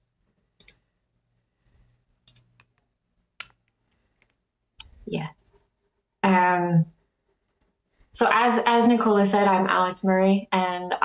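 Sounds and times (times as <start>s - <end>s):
computer mouse clicks: 0.6s - 0.8s, 2.2s - 5.7s.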